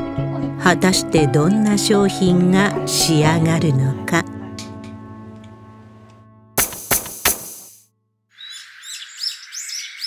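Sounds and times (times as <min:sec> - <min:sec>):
outdoor hiss: 0:06.6 - 0:07.8
small birds chirping: 0:08.3 - 0:10.0.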